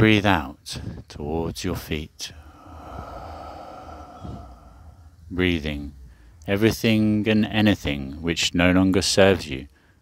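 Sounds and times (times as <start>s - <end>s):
slow exhale into microphone: 2.2s - 5.4s.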